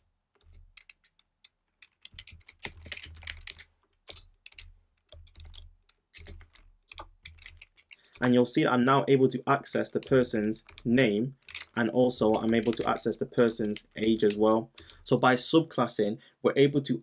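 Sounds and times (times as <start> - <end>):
computer keyboard typing: 0.3 - 8.5, 9.4 - 15.2.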